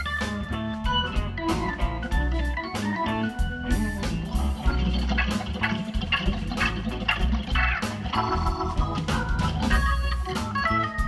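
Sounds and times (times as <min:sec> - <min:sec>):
drums: 0:00.0 - 0:11.0
electric bass: 0:00.0 - 0:11.0
organ sustained chords: 0:00.0 - 0:11.0.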